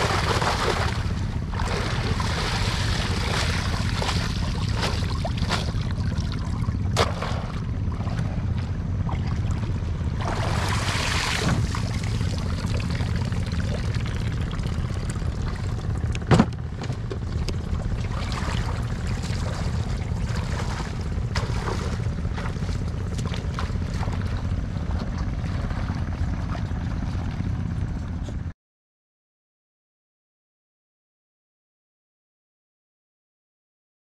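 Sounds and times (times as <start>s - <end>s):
water sloshing and splashing: 0.0s - 28.3s
low rumble: 0.0s - 28.5s.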